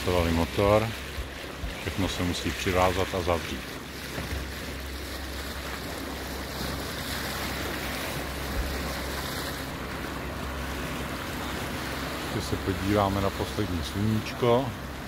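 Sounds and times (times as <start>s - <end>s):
boat engine droning: 0.0s - 15.0s
water rushing past hull: 0.0s - 15.0s.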